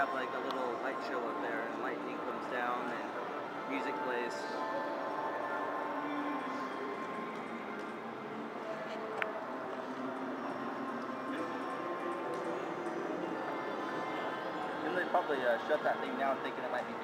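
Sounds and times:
background chatter: 0.0s - 17.0s.

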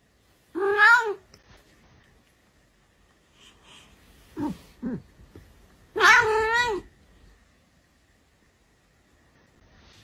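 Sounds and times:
cat meowing: 5.9s - 6.9s.

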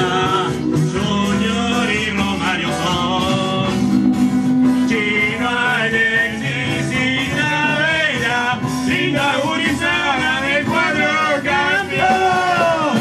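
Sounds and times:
bass guitar: 0.0s - 13.0s
electric guitar: 0.0s - 13.0s
men singing together: 0.0s - 13.0s.

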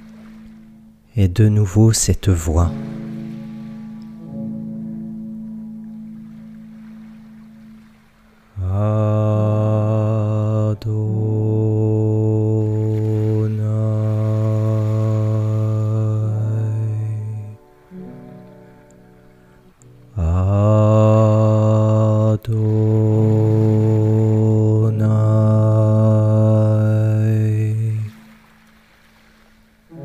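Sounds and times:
deep chanting voice: 8.6s - 17.6s, 20.1s - 28.3s.

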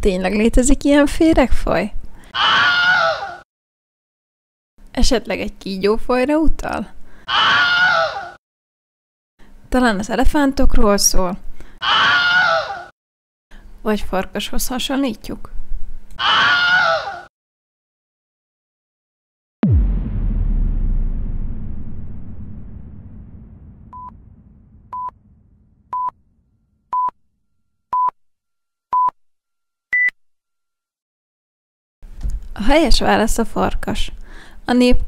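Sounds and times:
high-pitched cartoon scream: 2.3s - 3.4s, 7.3s - 8.4s, 11.8s - 12.9s, 16.2s - 17.3s
wolf howling: 2.4s - 3.4s, 7.3s - 8.4s, 16.2s - 17.3s.

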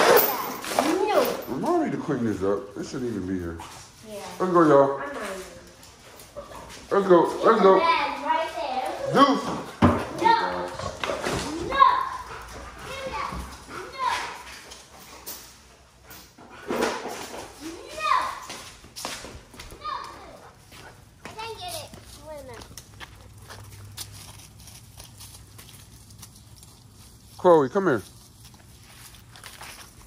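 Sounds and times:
children calling and chattering: 5.5s - 14.6s, 17.5s - 18.7s, 19.5s - 23.6s.

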